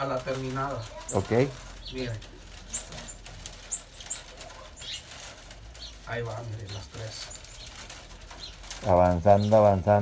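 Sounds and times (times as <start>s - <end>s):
reeds rustling through basket: 0.0s - 10.0s
small bird chirping: 0.0s - 10.0s.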